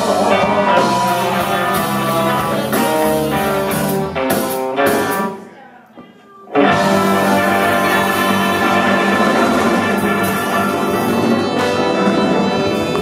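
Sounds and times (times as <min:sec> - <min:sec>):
bass: 0:00.0 - 0:05.3, 0:06.6 - 0:13.0
electric guitar: 0:00.0 - 0:05.5, 0:06.5 - 0:13.0
drums: 0:00.0 - 0:13.0
keyboard: 0:06.6 - 0:13.0
tenor saxophone: 0:06.6 - 0:13.0
trombone: 0:06.7 - 0:13.0.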